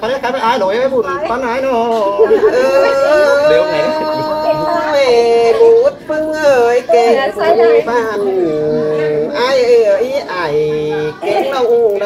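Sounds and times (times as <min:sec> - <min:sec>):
unaccompanied folk singing: 0:01.2 - 0:12.0.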